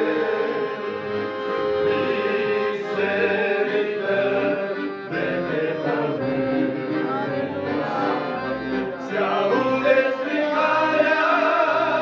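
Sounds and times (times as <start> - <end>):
men singing in harmony: 0.0 - 12.0
piano accordion: 0.0 - 12.0.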